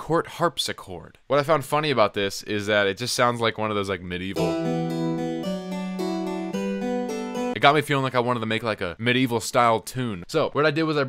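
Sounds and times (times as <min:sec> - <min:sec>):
harpsichord melody: 0:04.4 - 0:07.6.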